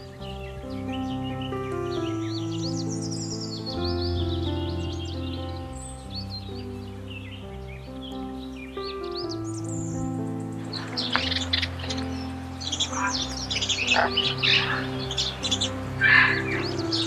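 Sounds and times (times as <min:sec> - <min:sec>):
birds chirping: 0:00.0 - 0:17.0
slow background music: 0:00.0 - 0:17.0.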